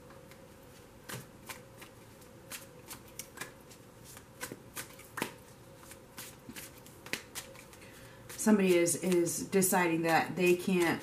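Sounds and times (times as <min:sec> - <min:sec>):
cards being shuffled: 0:01.1 - 0:08.4.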